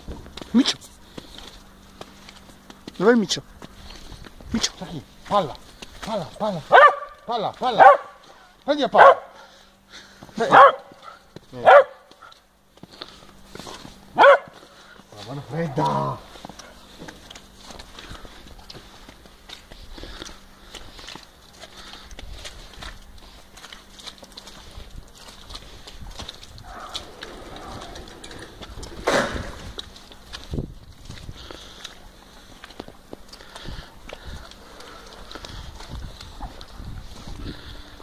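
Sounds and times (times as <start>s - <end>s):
footsteps crunching in snow: 0.0s - 9.2s, 10.0s - 38.0s
sudden loud noise: 27.5s - 29.8s.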